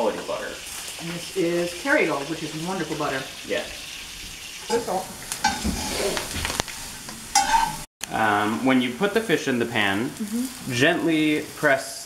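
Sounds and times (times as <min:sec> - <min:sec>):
butter sizzling in a pan: 0:00.0 - 0:07.9, 0:09.6 - 0:12.0.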